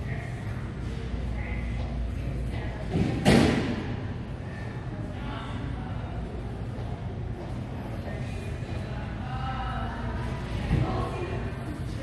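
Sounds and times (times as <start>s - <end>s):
heavy thud with ring-out: 2.9s - 3.9s.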